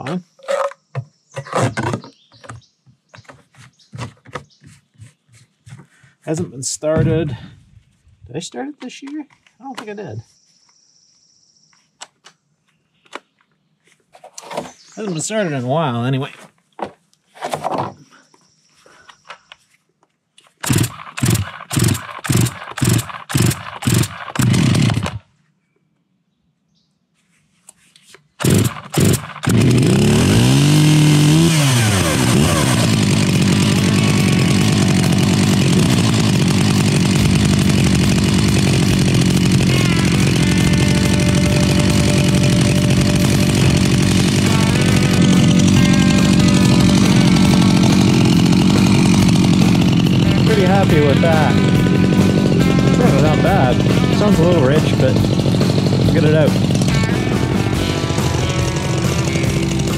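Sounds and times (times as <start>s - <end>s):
chainsaw starting and running: 20.6s - 25.3s, 28.4s - 59.9s.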